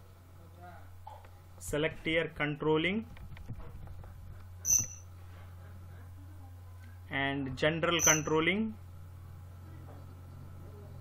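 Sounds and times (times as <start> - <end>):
low electrical hum: 0.0 - 11.0
sharp click with high ring: 4.7 - 5.1, 8.0 - 8.3.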